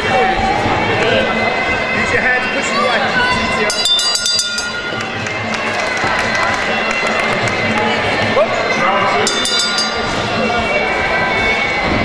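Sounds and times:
crowd chatter: 0.0s - 12.0s
ring bell struck rapidly: 3.6s - 7.3s, 9.0s - 10.8s.

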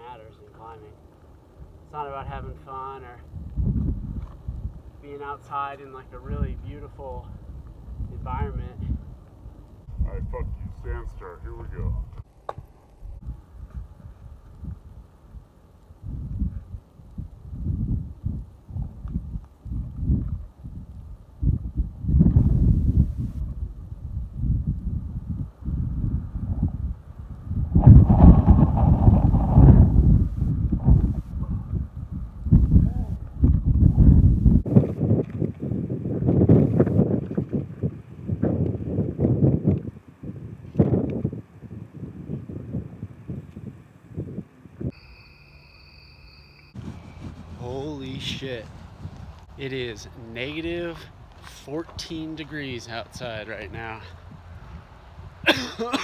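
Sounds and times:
wind rumbling on microphone: 1.0s - 45.1s, 46.7s - 55.5s
short electronic beep: 44.9s - 47.2s.

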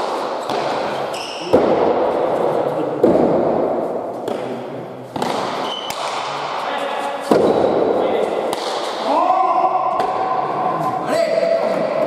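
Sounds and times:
long held shouts: 9.0s - 10.4s.

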